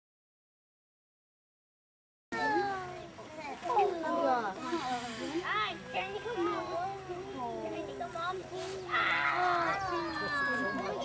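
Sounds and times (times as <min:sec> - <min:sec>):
children talking and exclaiming: 0:02.3 - 0:11.0.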